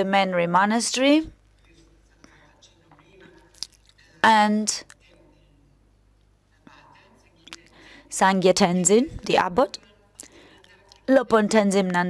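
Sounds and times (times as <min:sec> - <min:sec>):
woman speaking: 0:00.0 - 0:01.4, 0:04.2 - 0:04.9, 0:08.1 - 0:09.8, 0:11.0 - 0:12.0
soft mouth clicks: 0:03.5 - 0:04.0.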